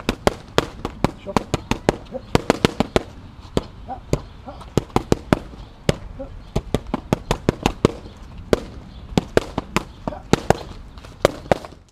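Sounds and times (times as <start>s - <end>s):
boxing gloves smacking focus mitts: 0.0s - 11.9s.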